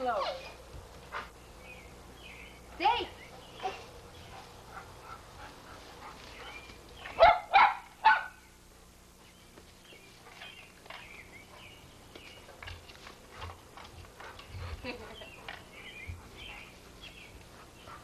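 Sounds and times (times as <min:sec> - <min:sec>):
dog barking: 0:07.1 - 0:08.4.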